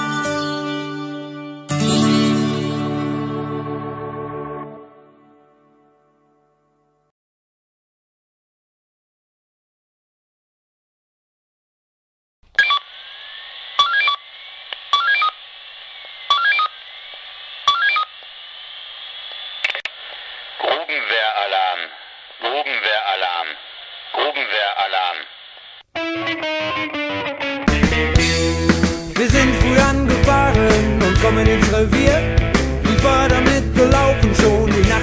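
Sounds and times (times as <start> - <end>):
rock band playing: 0.0 - 5.2, 26.0 - 35.0
touch-tone dialing beeps: 12.6 - 12.8, 14.9 - 15.4, 16.3 - 16.7, 17.7 - 18.1
telephone line noise: 12.6 - 13.1, 13.8 - 15.4, 16.2 - 16.9, 17.6 - 18.2
voice over a phone: 20.6 - 25.3.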